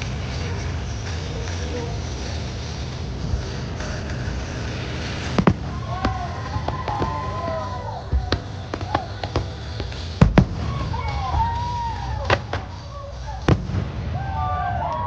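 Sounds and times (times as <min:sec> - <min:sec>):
music with singing over loudspeakers: 0:00.0 - 0:13.6
fireworks bangs: 0:00.0 - 0:15.0.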